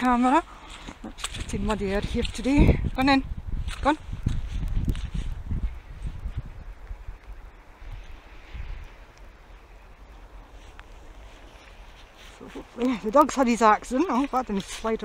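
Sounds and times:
wind on microphone: 0:00.0 - 0:15.0.

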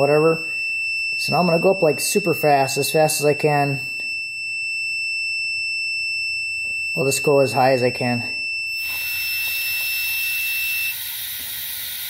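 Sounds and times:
multimeter continuity buzzer tone: 0:00.8 - 0:12.0.

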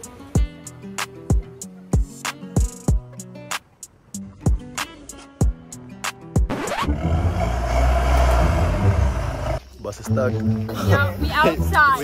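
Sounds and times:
music: 0:00.0 - 0:12.0
deep bus rumble: 0:06.8 - 0:09.8.

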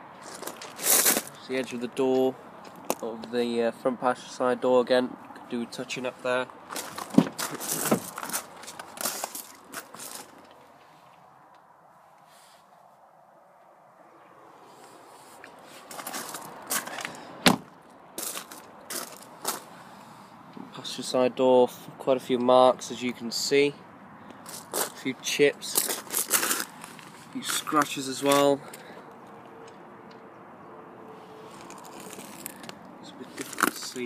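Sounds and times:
footsteps crunching on gravel: 0:00.2 - 0:01.4, 0:06.6 - 0:11.2, 0:15.4 - 0:17.2, 0:18.2 - 0:19.8, 0:24.5 - 0:28.8, 0:31.4 - 0:34.0.

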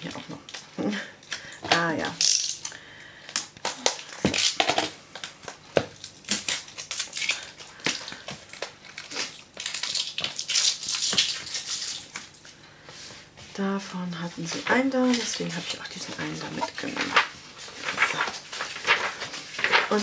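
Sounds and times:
plastic shrink-wrap crinkling: 0:01.7 - 0:12.4, 0:14.4 - 0:20.0.

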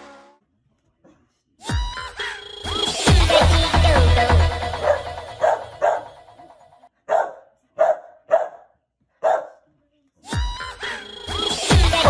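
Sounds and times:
electronic music: 0:01.7 - 0:06.7, 0:10.4 - 0:12.0
dog barking: 0:04.8 - 0:06.2, 0:07.1 - 0:09.6.

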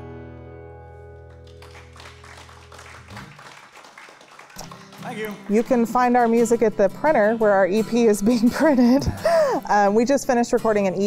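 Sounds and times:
audience applauding: 0:01.2 - 0:06.4
acoustic guitar and banjo chord: 0:04.6 - 0:11.0.

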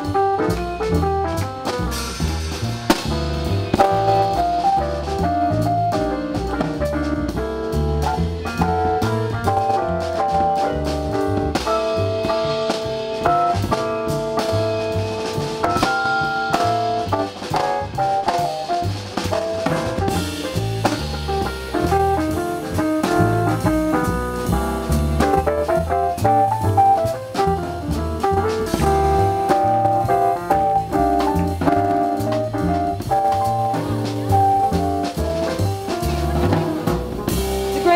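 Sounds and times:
drum kit: 0:00.0 - 0:37.9
jazz piano solo: 0:00.0 - 0:37.9
upright bass: 0:00.0 - 0:37.9.

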